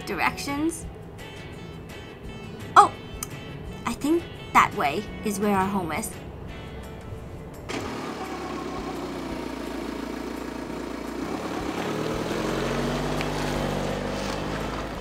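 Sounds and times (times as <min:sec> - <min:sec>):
car engine driving off: 0:06.2 - 0:15.0.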